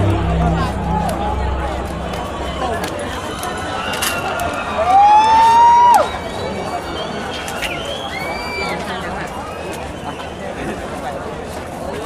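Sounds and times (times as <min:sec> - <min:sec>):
person calling high-pitched note: 0:00.0 - 0:03.4
crowd noise: 0:00.0 - 0:12.0.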